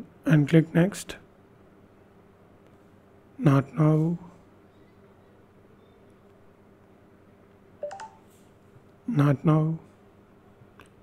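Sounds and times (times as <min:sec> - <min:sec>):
faint steady hum: 0:00.0 - 0:11.0
phone chime rising notes: 0:07.8 - 0:08.2.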